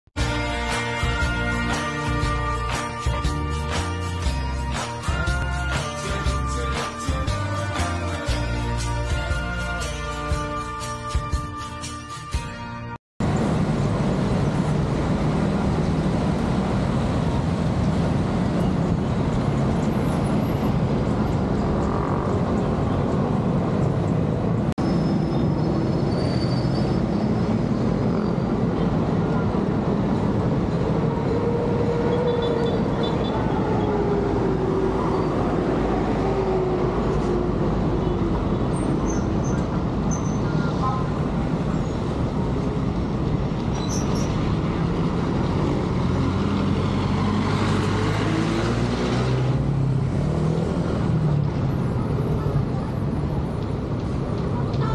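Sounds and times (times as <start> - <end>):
street traffic roar: 0.1 - 54.9.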